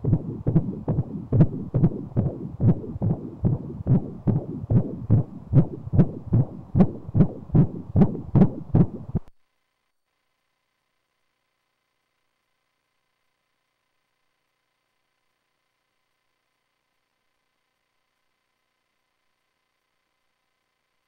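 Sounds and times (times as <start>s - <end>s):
fast doppler heartbeat pulse: 0.0s - 9.3s.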